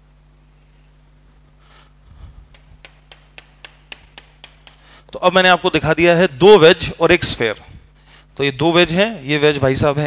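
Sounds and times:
chalk striking a chalkboard: 2.5 - 5.0.

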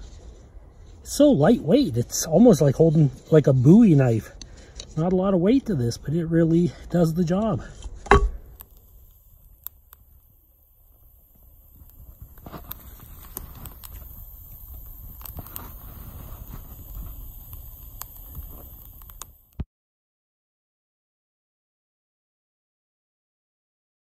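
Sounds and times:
fire crackling and popping: 0.0 - 19.7
hatchet striking wood: 8.0 - 8.5.

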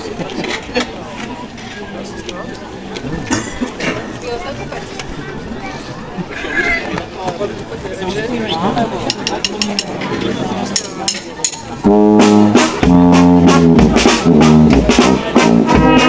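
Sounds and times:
crowd talking: 0.0 - 16.0
brass band playing: 11.8 - 16.0.

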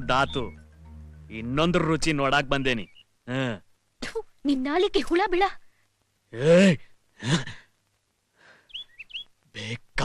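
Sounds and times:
faint high chirps: 0.0 - 3.2, 8.7 - 9.4.

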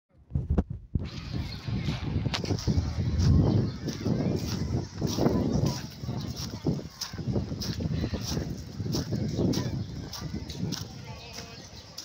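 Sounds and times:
people talking in background: 1.0 - 12.0
footsteps on pebbles: 1.1 - 12.0.

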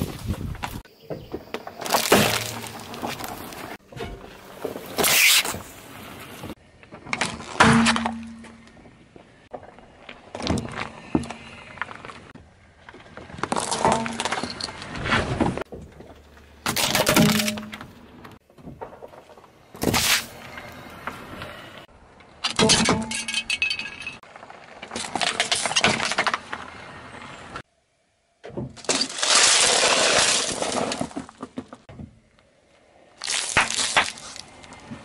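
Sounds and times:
tyre crushing plastic toy: 28.8 - 31.4.

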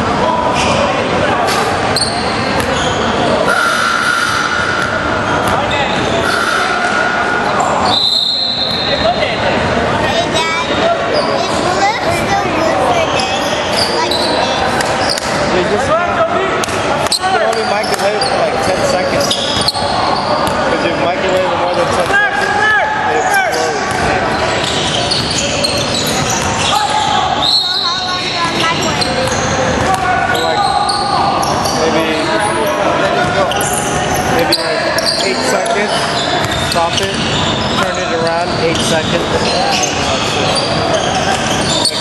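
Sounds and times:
players calling out: 0.1 - 11.8, 12.4 - 42.0.

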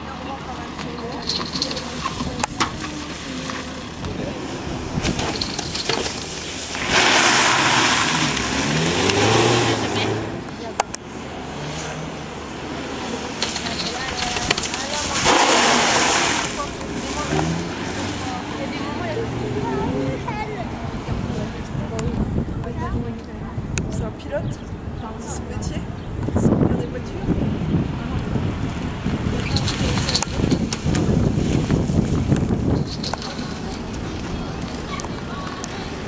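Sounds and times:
tyres sliding: 0.4 - 20.3, 29.1 - 36.0
car engine revving: 1.3 - 21.3.

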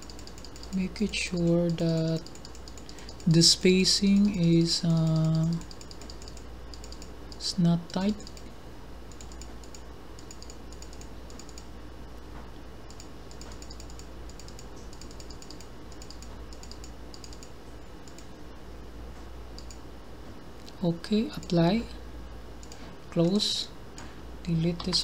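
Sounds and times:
computer keyboard typing: 0.0 - 3.4, 4.0 - 8.5, 9.1 - 11.7, 12.9 - 18.3, 19.6 - 19.8
low steady hum: 0.0 - 25.0.

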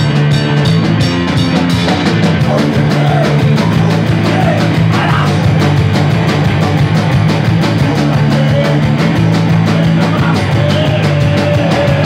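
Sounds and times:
bass guitar: 0.0 - 12.0
drum kit: 0.0 - 12.0
electric guitar: 0.0 - 12.0.

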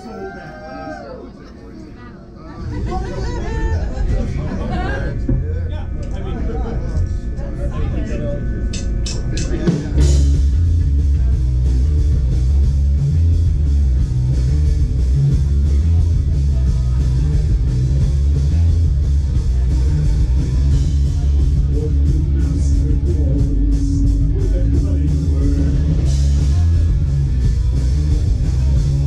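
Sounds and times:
voices over low bass: 0.0 - 29.0
rock band playing loud: 9.3 - 29.0.

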